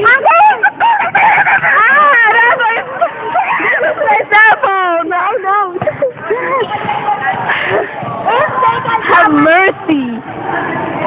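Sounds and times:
young people shrieking and laughing: 0:00.0 - 0:09.7.

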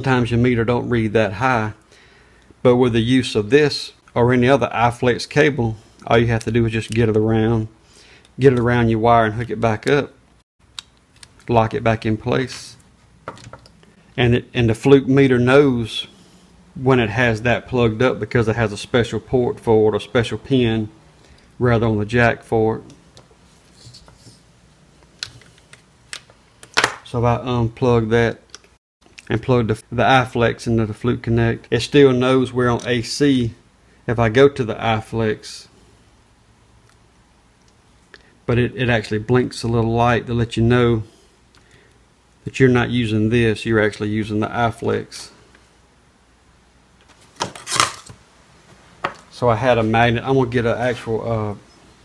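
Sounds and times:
handling noise: 0:47.0 - 0:50.0.

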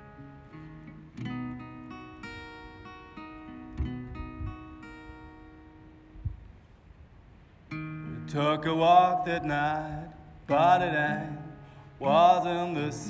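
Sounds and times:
acoustic guitar chords: 0:00.0 - 0:06.7, 0:07.6 - 0:13.0.

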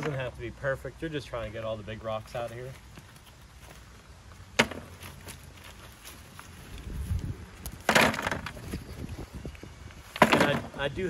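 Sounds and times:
rocks clattering into plastic bucket: 0:07.8 - 0:08.6, 0:10.1 - 0:10.8.

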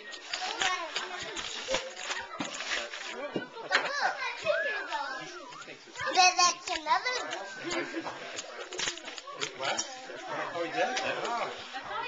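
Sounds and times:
wrapping paper rustling and tearing: 0:00.0 - 0:03.3, 0:03.9 - 0:12.0
children chattering and calling: 0:00.0 - 0:12.0.

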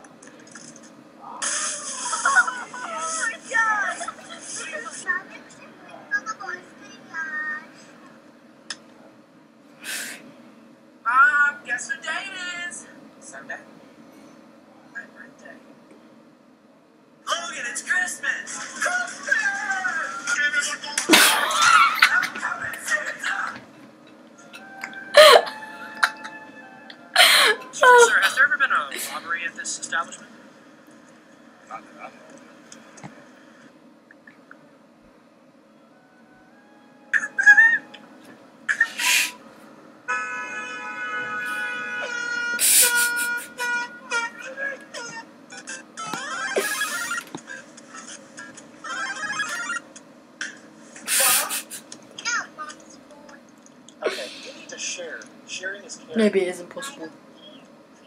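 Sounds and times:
background music: 0:24.4 - 0:28.4.

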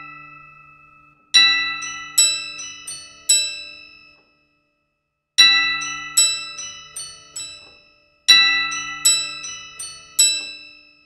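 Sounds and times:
toy piano and glockenspiel notes: 0:05.4 - 0:11.0.

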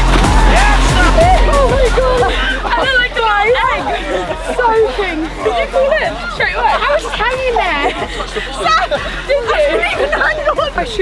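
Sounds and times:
music with heavy bass and beat: 0:00.0 - 0:11.0
voices: 0:00.3 - 0:11.0.

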